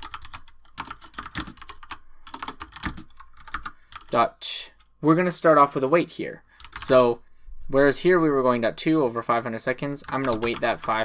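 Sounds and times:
keyboard typing: 0.0s - 5.0s, 6.6s - 7.0s, 9.9s - 11.0s.

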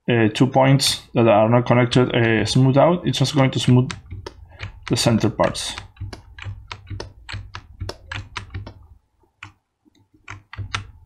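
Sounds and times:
computer keys clicking: 3.2s - 9.6s, 10.2s - 11.0s.

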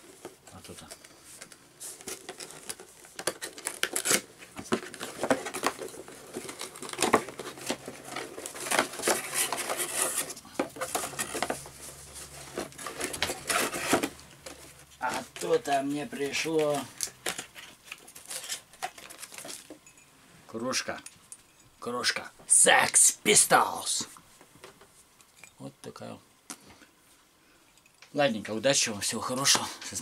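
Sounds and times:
cardboard and paper rustling: 0.0s - 19.8s.

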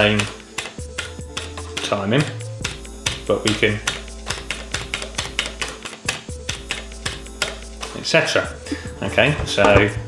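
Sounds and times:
chopped electronic beat: 2.6s - 7.9s.

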